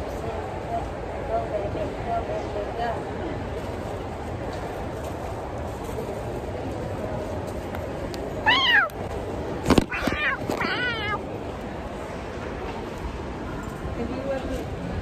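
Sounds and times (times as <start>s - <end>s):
steady background hum: 0.0s - 15.0s
person imitating cat meows: 8.4s - 9.0s.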